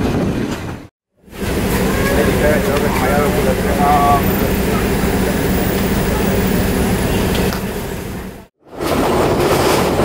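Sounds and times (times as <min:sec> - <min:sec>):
diesel locomotive drone: 0:00.6 - 0:09.5.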